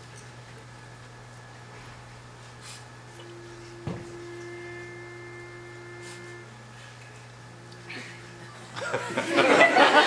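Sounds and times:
low steady hum: 0.0 - 10.0
pitch pipe note: 3.2 - 6.5.

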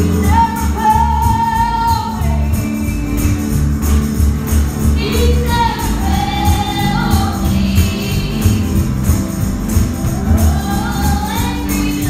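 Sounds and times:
bass beat: 0.0 - 12.0
tambourine: 0.0 - 12.0
voices singing gospel: 4.9 - 12.0.

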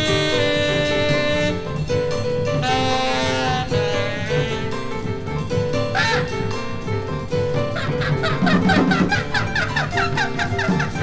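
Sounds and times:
tenor saxophone: 0.0 - 6.9
double bass: 0.0 - 11.0
drums: 0.0 - 11.0
piano: 0.0 - 11.0.

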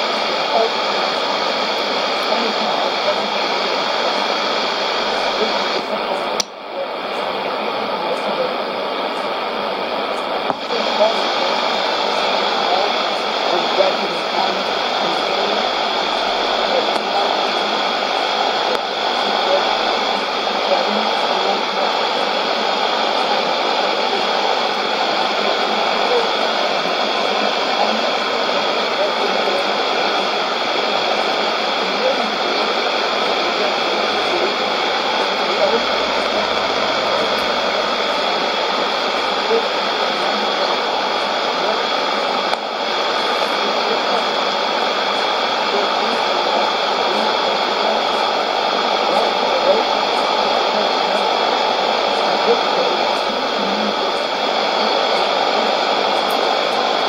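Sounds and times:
radio static hiss: 0.0 - 57.0.

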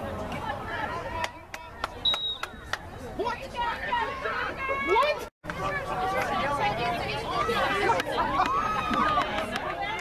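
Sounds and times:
spectators chatting: 0.0 - 10.0
hand claps: 8.0 - 10.0.

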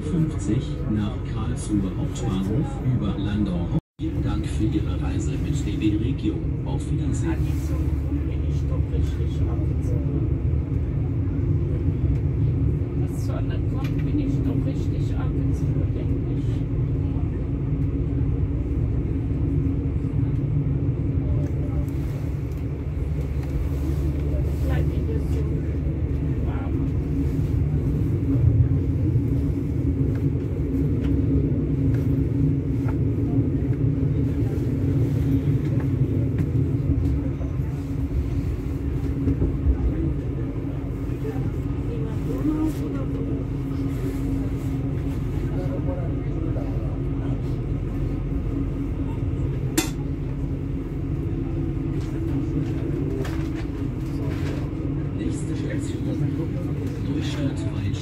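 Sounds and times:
train running low rumble: 0.0 - 58.0.

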